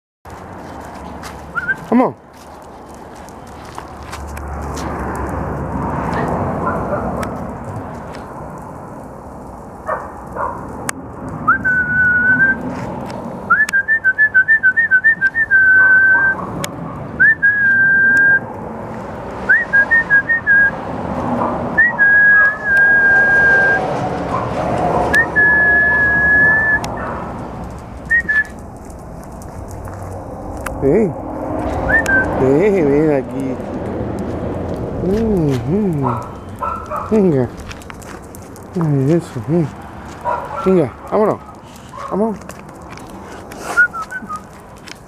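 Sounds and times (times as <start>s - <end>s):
outdoor background noise: 0.2s - 45.0s
person whistling for dog: 1.6s - 1.9s, 11.5s - 12.6s, 13.5s - 16.4s, 17.2s - 18.4s, 19.5s - 20.7s, 21.8s - 23.8s, 25.2s - 26.9s, 28.1s - 28.6s, 31.9s - 32.3s, 43.6s - 44.5s.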